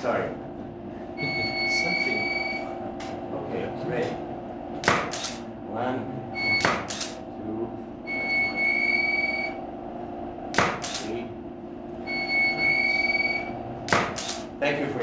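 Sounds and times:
camera shutter clicking: 4.8 - 5.4, 6.8 - 7.2, 10.8 - 11.1, 14.0 - 14.5
photo flash recharging whine: 4.8 - 5.4, 6.4 - 7.2, 10.8 - 11.1, 12.1 - 14.5.

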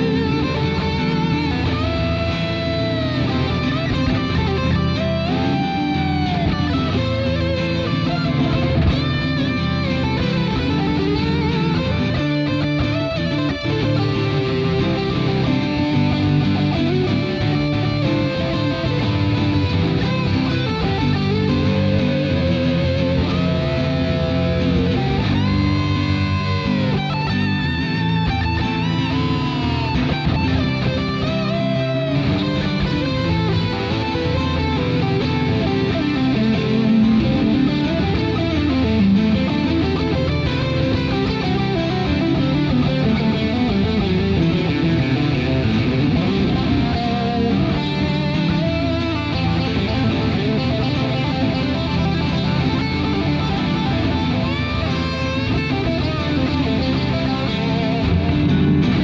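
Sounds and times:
electric guitar lead: 0.0 - 59.0
rock band backing: 0.0 - 59.0.

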